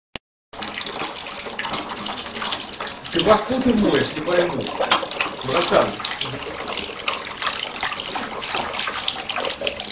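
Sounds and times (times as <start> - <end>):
tap water running into sink: 0.6 - 9.9.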